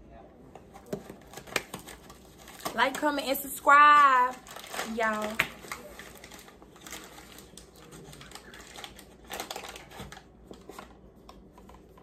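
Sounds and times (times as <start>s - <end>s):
paper and cardboard crinkling: 0.7s - 12.0s.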